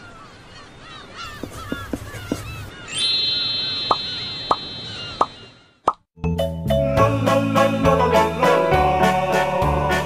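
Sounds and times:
faint bird calls: 0:00.0 - 0:05.8
cartoon pop sound effects: 0:05.8 - 0:06.0.

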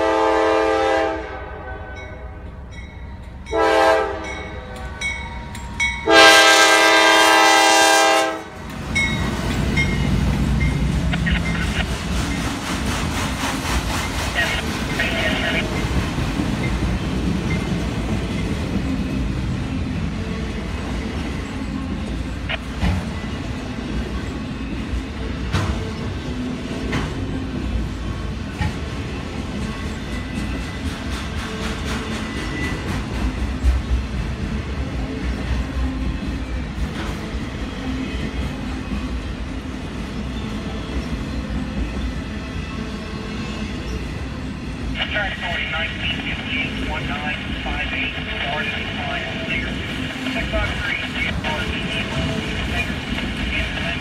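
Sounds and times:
locomotive air horn blasts: 0:00.0 - 0:02.3, 0:03.5 - 0:04.5, 0:06.0 - 0:08.6
freight train rumbling past: 0:00.0 - 0:54.0.

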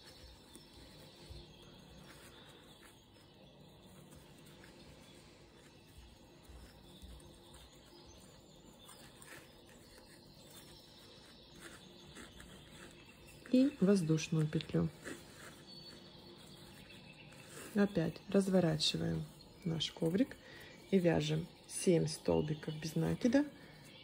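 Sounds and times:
twine rustling with crochet hook: 0:00.0 - 0:24.0.

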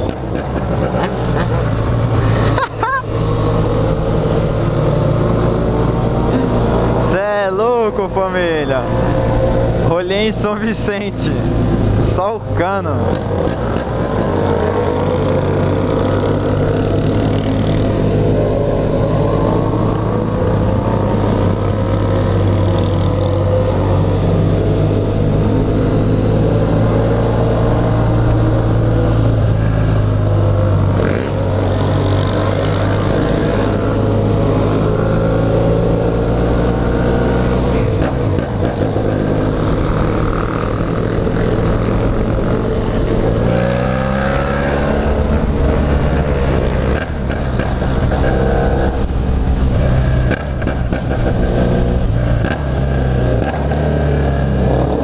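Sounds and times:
motorcycle engine cruising: 0:00.0 - 0:55.0.

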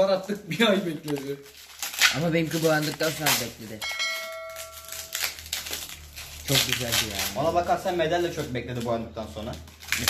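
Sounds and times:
light clicks and rustles of handling: 0:00.2 - 0:01.7
metal bicycle part ringing: 0:03.8 - 0:05.3.

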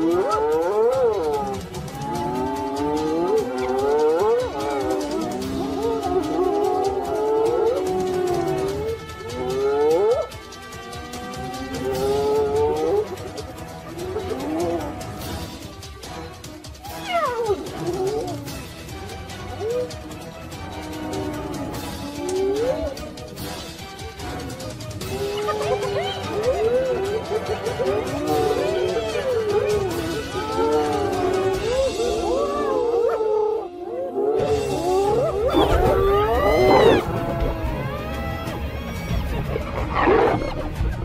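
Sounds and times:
animal wailing: 0:00.0 - 0:10.4, 0:11.6 - 0:15.6, 0:16.8 - 0:18.6, 0:19.4 - 0:23.2, 0:25.0 - 0:40.8
big cats snarling and growling: 0:00.0 - 0:16.0, 0:16.9 - 0:41.0
background music: 0:00.0 - 0:41.0.

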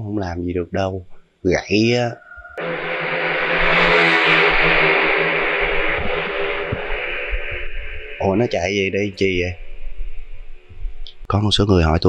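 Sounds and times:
low hum: 0:01.0 - 0:11.4
hissy drone: 0:01.5 - 0:11.2.

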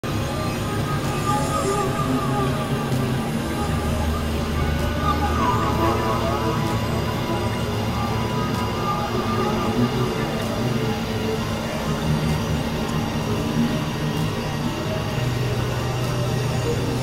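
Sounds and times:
low drone: 0:00.0 - 0:17.0
synthesizer drones: 0:00.0 - 0:17.0
gliding electronic tones: 0:00.4 - 0:15.9.

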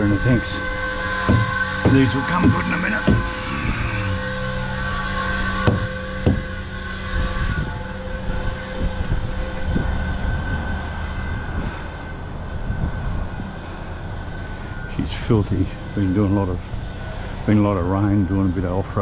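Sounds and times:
sharp knocks: 0:01.2 - 0:03.4, 0:05.6 - 0:06.5.

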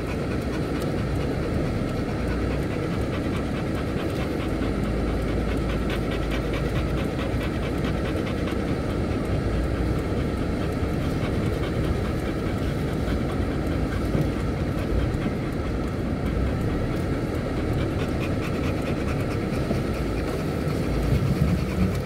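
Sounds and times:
tyres and engine rumble: 0:00.0 - 0:22.0.

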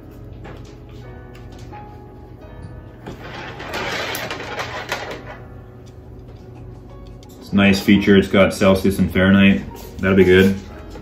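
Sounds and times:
cable rustling and clicks: 0:03.1 - 0:07.5.

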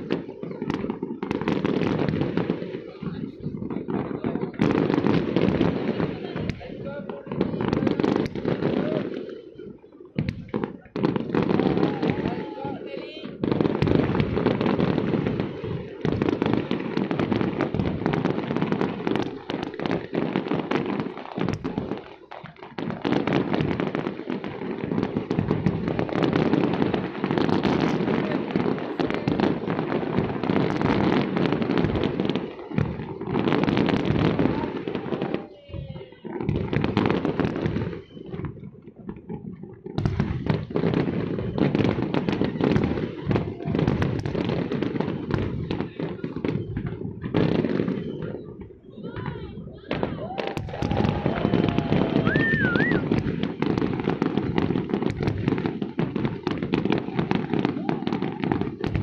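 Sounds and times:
fireworks bursting and crackling: 0:00.0 - 0:59.0.

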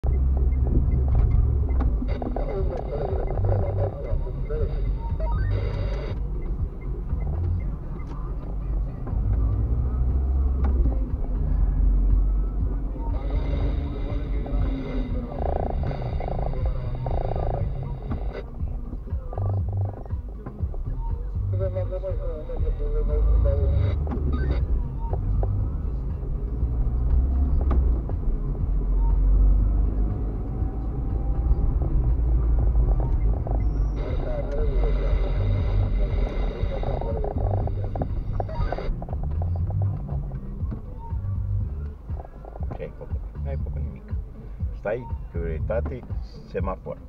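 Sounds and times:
car engine and tyres rumbling: 0:00.0 - 0:47.0.

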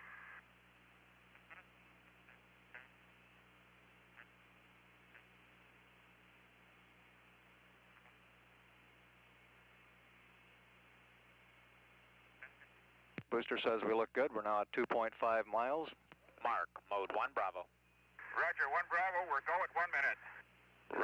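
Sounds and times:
faint steady hiss: 0:00.0 - 0:21.0.

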